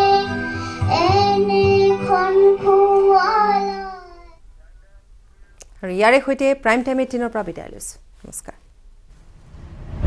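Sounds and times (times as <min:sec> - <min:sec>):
girl singing: 0:00.0 - 0:04.4.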